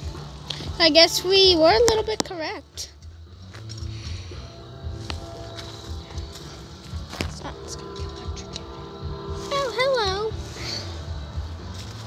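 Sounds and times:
railroad crossing bells ringing: 0:04.1 - 0:12.0.

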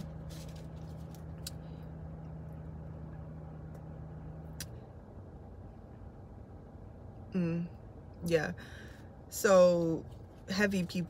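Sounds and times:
faint rumble: 0:00.0 - 0:11.0.

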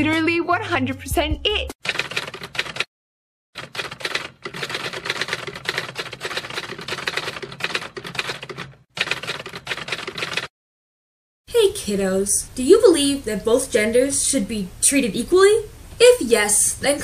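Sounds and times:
rapid typewriter keystrokes: 0:01.8 - 0:02.9, 0:03.6 - 0:10.5.

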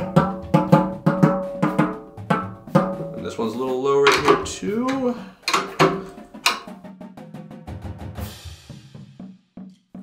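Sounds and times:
drum head tapped with stick: 0:00.0 - 0:06.8.

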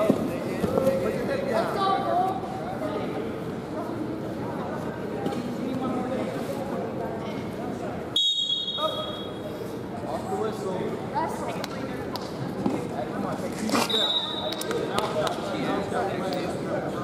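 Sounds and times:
referee's whistle blasts: 0:08.2 - 0:09.4, 0:13.9 - 0:14.6.

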